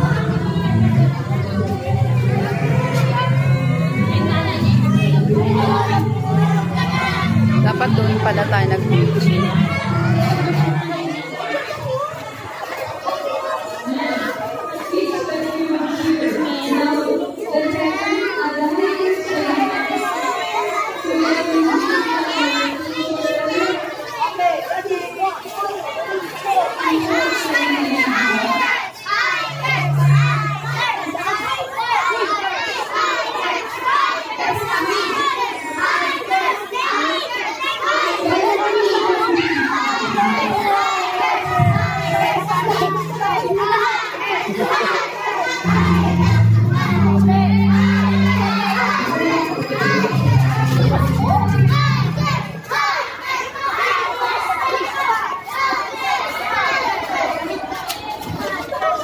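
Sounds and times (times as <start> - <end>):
background music: 0.0 - 11.0, 45.6 - 52.6
children talking and calling out: 0.0 - 59.0.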